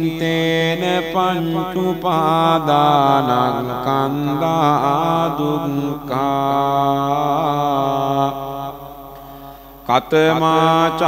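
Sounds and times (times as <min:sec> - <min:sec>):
man chanting: 0:00.0 - 0:09.2, 0:09.8 - 0:11.0.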